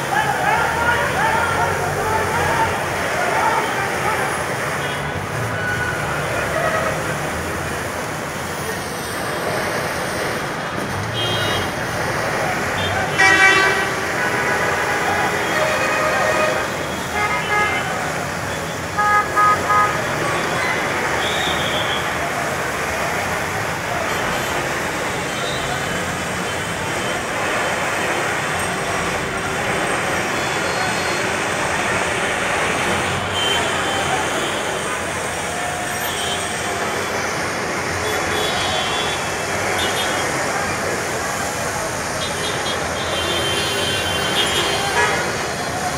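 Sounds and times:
engine and road noise: 0:00.0 - 0:45.9
voices: 0:00.0 - 0:45.9
car horns honking: 0:12.8 - 0:22.1, 0:42.2 - 0:45.4.

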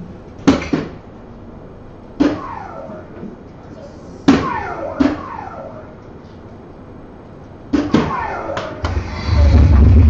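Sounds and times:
darts hitting electronic dartboard: 0:04.3 - 0:05.9, 0:07.7 - 0:09.0
falling electronic tone: 0:08.2 - 0:10.0.

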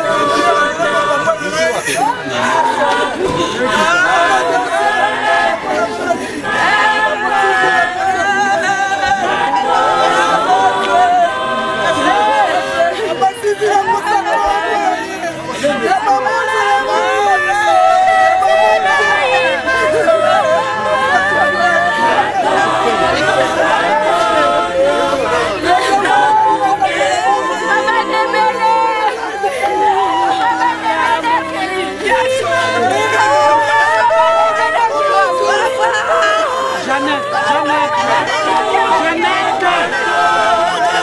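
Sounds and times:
group singing unaccompanied: 0:00.0 - 0:41.0
people talking: 0:00.0 - 0:41.0
women wailing in mourning: 0:00.0 - 0:41.0.

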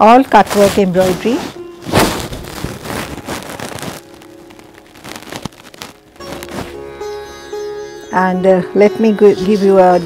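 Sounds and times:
silk fabric rustling: 0:00.0 - 0:06.9
sitar music: 0:00.0 - 0:10.0.

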